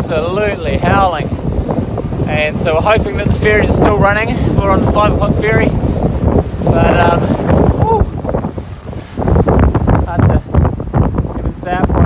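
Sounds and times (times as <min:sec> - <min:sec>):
howling wind gusts on microphone: 0:00.0 - 0:12.0.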